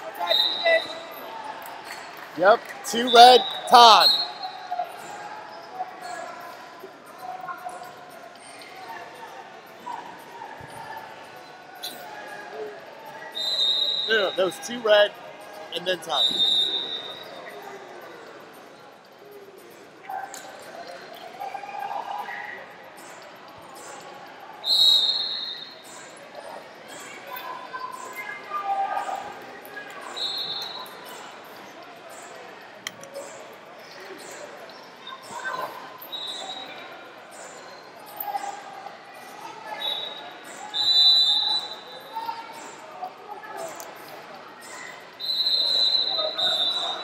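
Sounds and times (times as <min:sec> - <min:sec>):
faint voices: 0:00.0 - 0:47.0.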